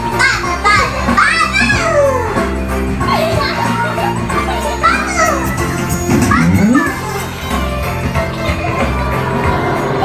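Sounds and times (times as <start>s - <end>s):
background music: 0.0s - 10.0s
children calling out and chattering: 0.4s - 7.5s.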